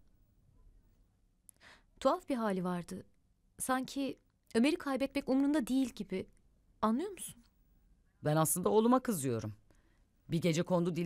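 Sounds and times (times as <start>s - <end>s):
faint in-breath: 1.5s - 2.0s, 9.7s - 10.2s.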